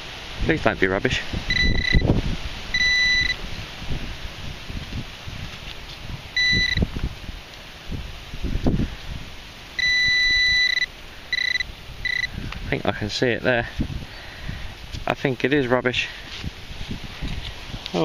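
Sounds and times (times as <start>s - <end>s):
metal detector beeping: 1.5s - 2.1s, 2.7s - 3.4s, 6.4s - 6.9s, 9.8s - 12.3s.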